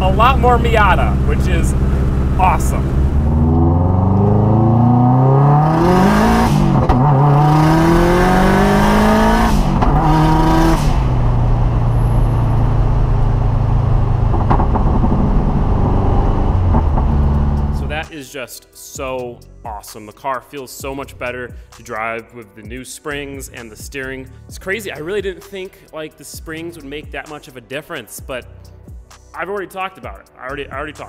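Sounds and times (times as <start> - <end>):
car engine accelerating through gears: 1.0 - 18.0.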